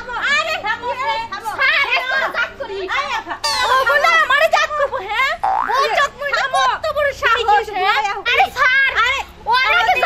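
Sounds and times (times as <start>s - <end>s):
women shouting and quarrelling: 0.0s - 10.0s
cartoon boing sound effect: 3.4s - 3.9s, 5.4s - 5.9s.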